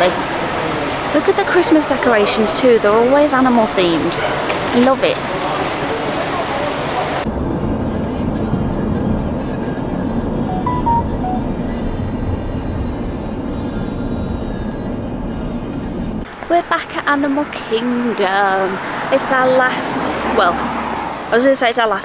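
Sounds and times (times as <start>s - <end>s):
hissy outdoor background: 0.0s - 7.3s
car road noise rumble: 3.0s - 10.7s, 11.4s - 21.3s
faint music: 7.8s - 16.0s.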